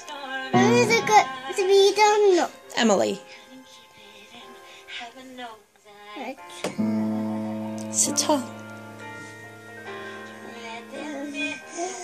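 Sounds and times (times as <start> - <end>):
piano notes: 0.5 - 2.9, 6.5 - 12.0.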